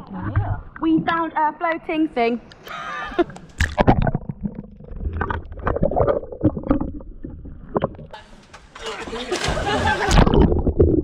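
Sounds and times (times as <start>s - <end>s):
low water rumble: 0.0s - 1.3s, 3.6s - 8.2s.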